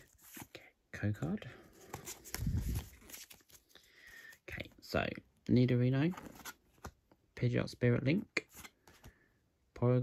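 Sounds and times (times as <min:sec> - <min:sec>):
cards being shuffled by hand: 0:00.0 - 0:00.6, 0:01.7 - 0:04.8.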